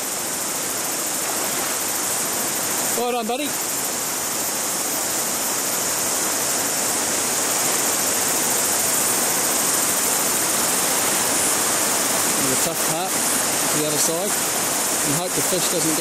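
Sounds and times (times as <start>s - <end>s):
river water rushing over rocks: 0.0s - 16.0s.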